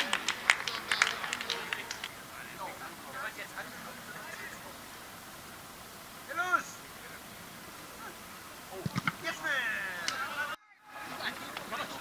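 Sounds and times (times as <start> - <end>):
scattered hand claps: 0.0 - 2.2, 11.4 - 11.8.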